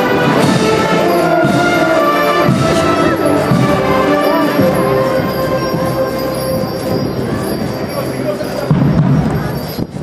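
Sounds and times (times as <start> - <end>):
wind band playing slow march: 0.0 - 9.0.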